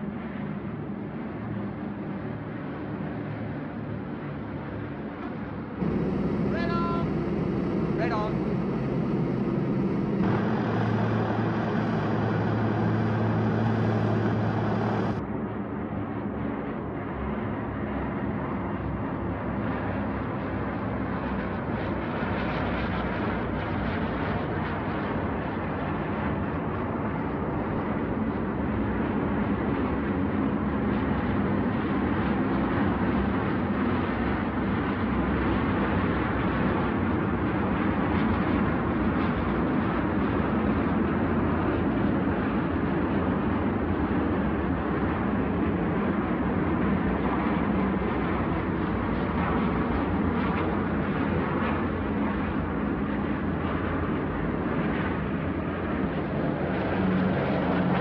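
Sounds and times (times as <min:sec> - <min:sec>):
propeller planes droning: 0:00.0 - 0:58.0.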